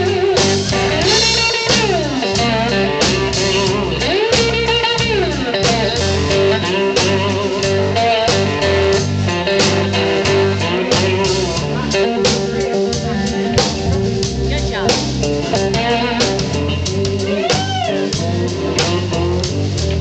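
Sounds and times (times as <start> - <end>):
drum kit: 0.0 - 20.0
electric guitar: 0.0 - 20.0
low bass line: 0.0 - 20.0.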